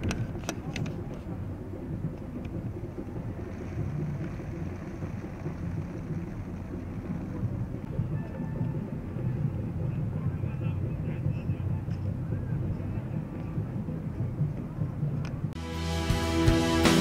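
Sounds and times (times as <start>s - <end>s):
faint voices: 0.0s - 15.5s
low rumble: 1.0s - 16.6s.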